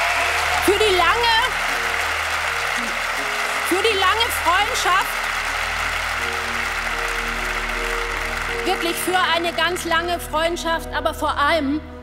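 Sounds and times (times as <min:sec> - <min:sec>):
audience applauding: 0:00.0 - 0:10.4.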